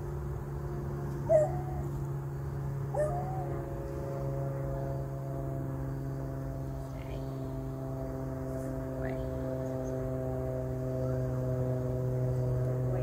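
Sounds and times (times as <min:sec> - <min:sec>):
steady droning hum: 0:00.0 - 0:13.0.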